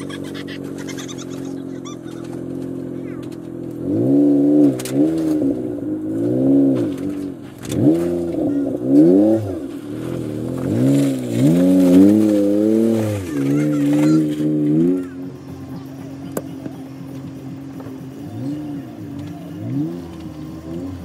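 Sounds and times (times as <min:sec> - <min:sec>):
engine revving under load: 0:00.0 - 0:21.0.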